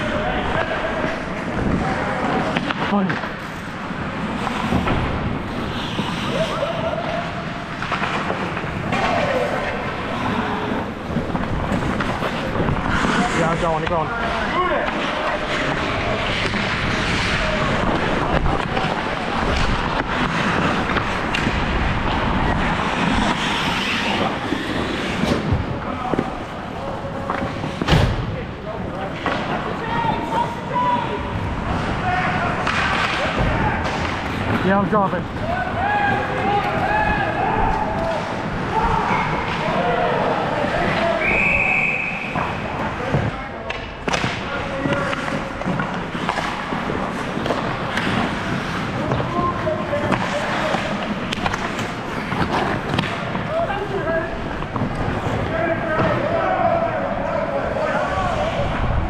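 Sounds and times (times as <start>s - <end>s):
skate blades scraping on ice: 0.0s - 27.9s, 44.1s - 56.4s
players calling out: 3.9s - 25.0s.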